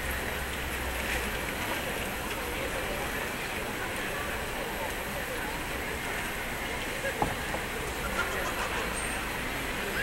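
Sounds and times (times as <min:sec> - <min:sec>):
indistinct voices of passers-by: 0:00.0 - 0:10.0
traffic noise: 0:00.0 - 0:10.0.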